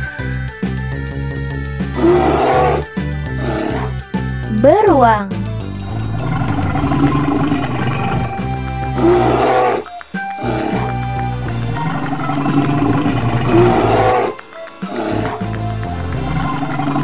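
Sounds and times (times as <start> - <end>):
children's music with steady beat: 0.0 - 17.0
bear roaring: 1.8 - 4.0, 8.8 - 11.3, 13.4 - 15.6.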